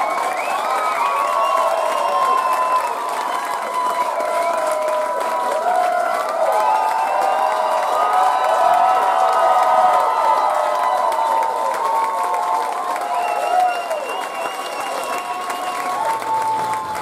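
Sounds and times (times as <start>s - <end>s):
audience applauding and cheering: 0.0s - 17.0s.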